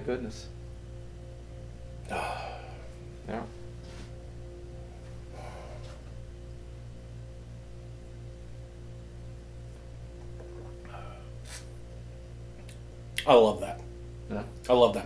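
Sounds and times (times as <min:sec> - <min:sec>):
steady low drone: 0:00.0 - 0:15.0
person sniffing: 0:11.0 - 0:11.7.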